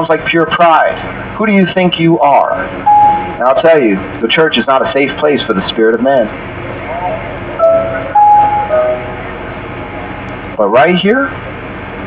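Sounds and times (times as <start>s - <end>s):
low steady hum: 0.0s - 12.0s
sustained soft music notes: 7.6s - 10.3s.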